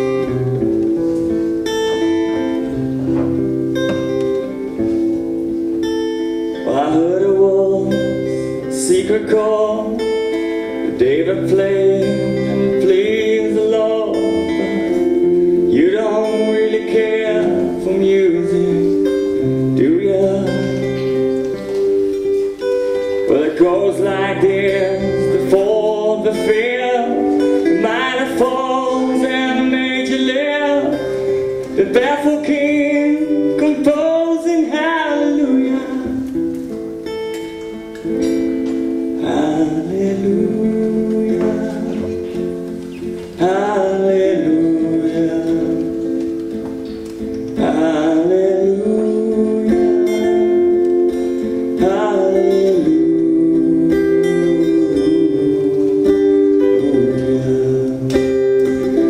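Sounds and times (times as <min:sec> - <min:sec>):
acoustic guitar chords: 0:00.0 - 0:59.0
man singing: 0:05.7 - 0:36.8, 0:38.0 - 0:59.0.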